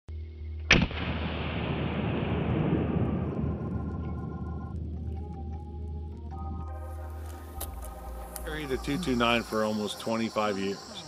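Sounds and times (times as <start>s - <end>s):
intro music with low drone: 0.1s - 11.0s
loud gunshot with echo: 0.7s - 3.6s.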